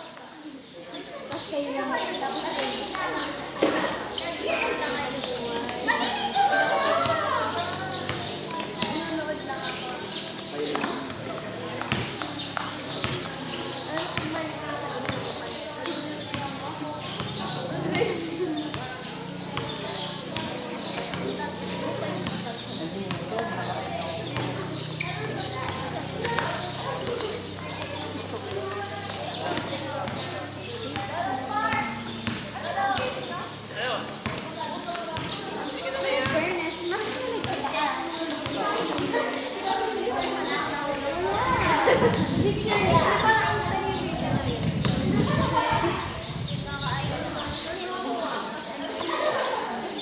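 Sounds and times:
people chattering and calling: 0.0s - 50.0s
basketball bouncing on concrete: 8.0s - 9.2s, 10.7s - 18.1s, 18.7s - 21.4s, 22.0s - 33.2s, 34.1s - 35.5s, 36.2s - 36.5s.

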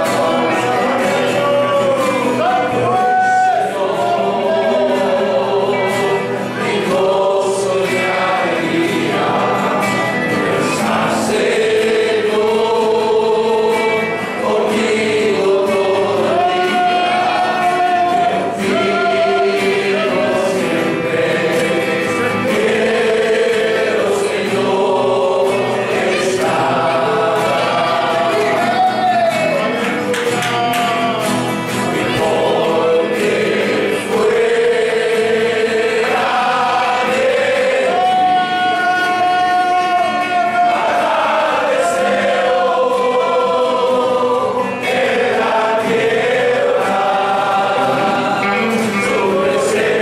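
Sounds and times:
congregation singing a hymn: 0.0s - 50.0s
guitars playing: 0.0s - 50.0s.

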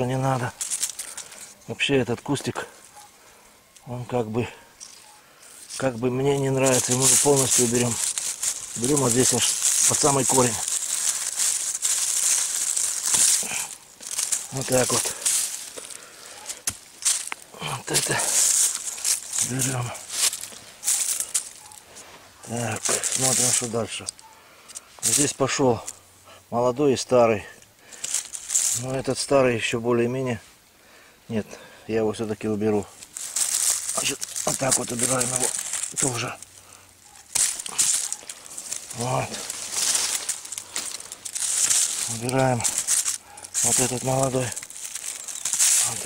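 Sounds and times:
loppers crunching through stem: 0.0s - 1.6s, 4.8s - 21.8s, 22.4s - 26.0s, 27.9s - 29.2s, 32.8s - 46.0s
leaves and branches rustling: 0.0s - 46.0s.

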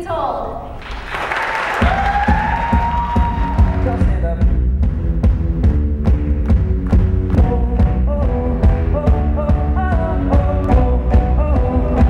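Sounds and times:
audience cheering and applause: 0.8s - 4.4s
live pop-rock band: 1.8s - 12.0s.

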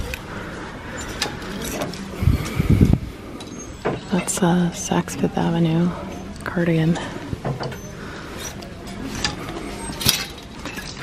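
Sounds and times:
hangers sliding on rack: 8.4s - 11.0s.

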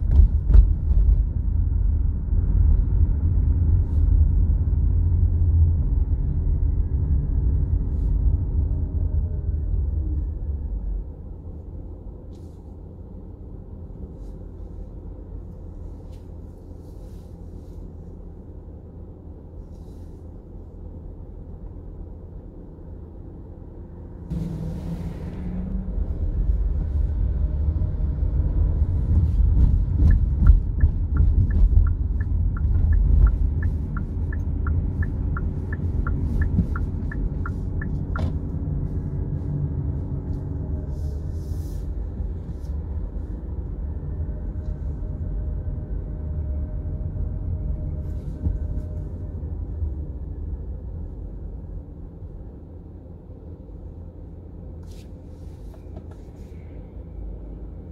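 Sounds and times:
road and engine rumble in car: 0.0s - 57.9s
turn signal relay ticking: 30.1s - 38.2s.

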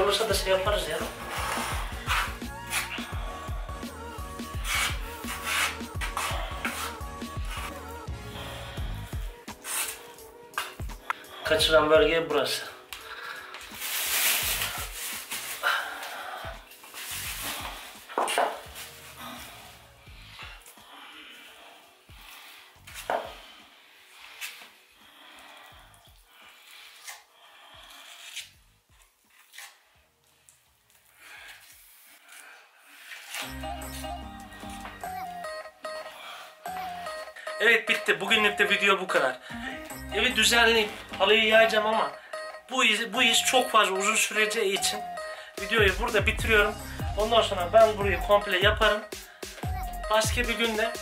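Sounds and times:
background music: 0.0s - 32.3s, 32.9s - 51.0s
metal tool scraping mortar: 1.1s - 3.1s, 4.6s - 7.8s.

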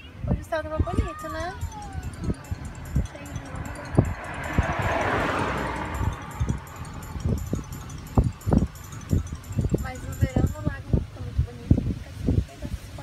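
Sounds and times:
car road and wind noise: 0.0s - 13.0s.

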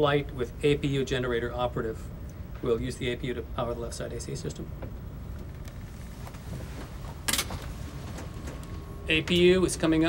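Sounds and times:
aircraft engine drone: 4.0s - 10.0s.

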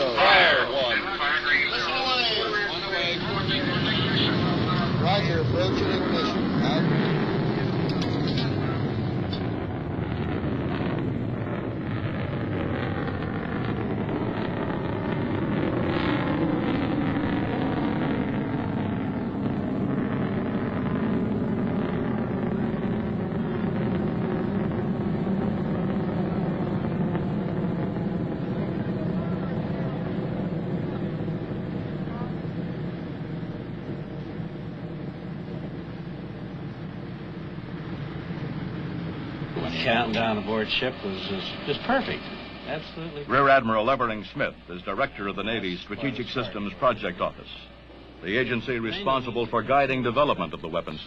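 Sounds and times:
rocket motor roaring: 0.0s - 51.0s.

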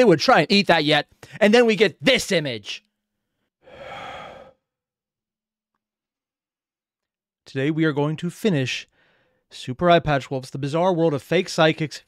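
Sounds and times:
man sighing heavily: 3.6s - 4.6s.

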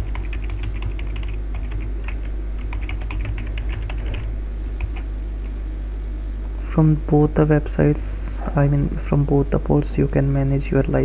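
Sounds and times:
keyboard typing: 0.0s - 5.0s
steady low hum: 0.0s - 11.0s.

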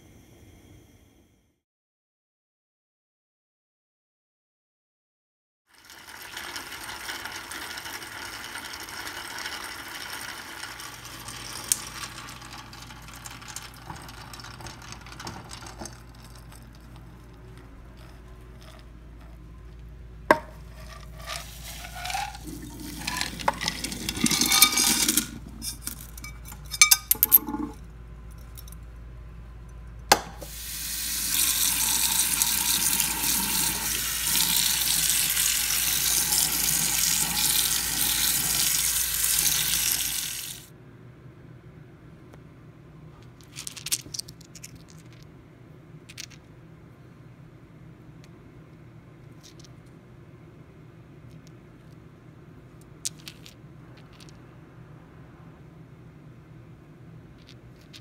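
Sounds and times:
tap water running: 5.8s - 16.6s, 21.2s - 27.8s, 30.1s - 40.7s
stones clattering on metal strainer: 11.7s - 17.4s, 20.3s - 27.8s
water splashing into strainer: 21.3s - 25.8s.

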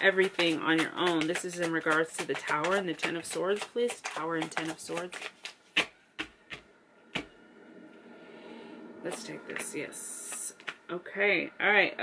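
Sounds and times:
faint steady background noise: 0.0s - 12.0s
cards being shuffled: 0.1s - 6.6s.

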